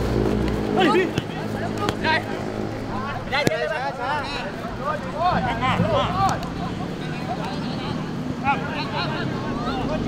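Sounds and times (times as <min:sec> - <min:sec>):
players shouting calls: 0:00.4 - 0:10.0
ball being kicked: 0:03.4 - 0:03.7.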